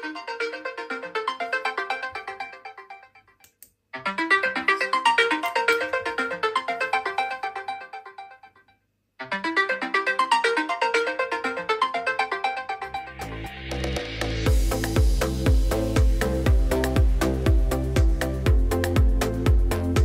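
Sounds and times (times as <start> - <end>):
electronic dance music: 4.0 - 8.4, 9.2 - 20.0.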